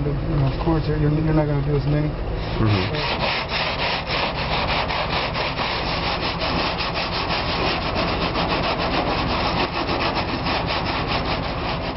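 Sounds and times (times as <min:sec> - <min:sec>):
stiff brush scrubbing siding: 0:02.4 - 0:11.9.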